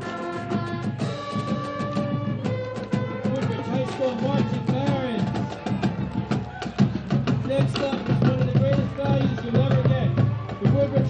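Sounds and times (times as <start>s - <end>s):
brass and saxophones playing: 0.0s - 10.7s
marching drums beating: 0.0s - 11.0s.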